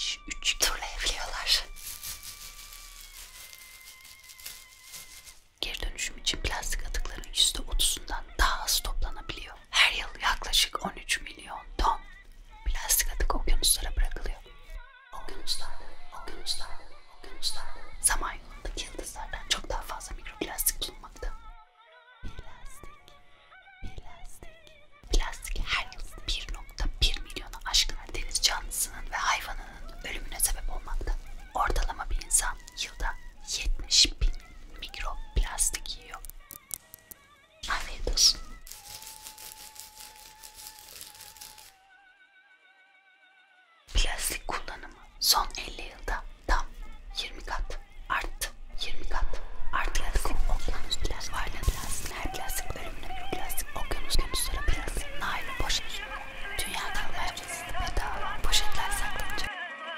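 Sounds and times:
woman whispering: 0:00.0 - 0:02.4, 0:05.1 - 0:21.5, 0:22.2 - 0:23.2, 0:23.8 - 0:36.5, 0:37.6 - 0:39.0, 0:43.9 - 0:59.5
faint background music: 0:00.0 - 0:59.9.

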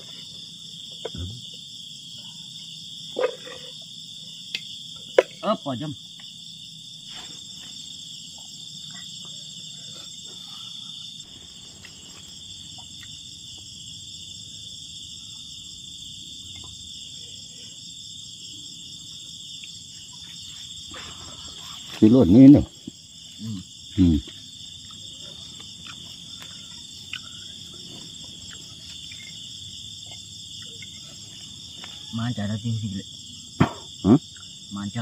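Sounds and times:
insects buzzing: 0:00.0 - 0:35.0
pulsing insect trill: 0:00.0 - 0:35.0.

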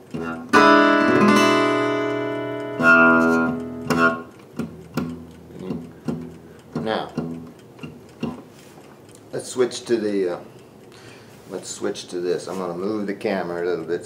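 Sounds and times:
blues guitar playing: 0:00.0 - 0:08.4.

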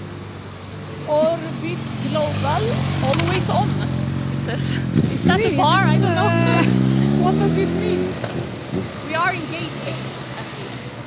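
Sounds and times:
voices talking: 0:00.9 - 0:08.2, 0:09.0 - 0:11.0
vehicle engine accelerating: 0:01.0 - 0:11.0.

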